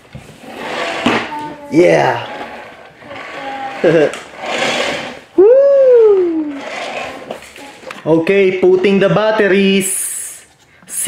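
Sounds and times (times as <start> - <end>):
child laughing: 3.4 - 4.3.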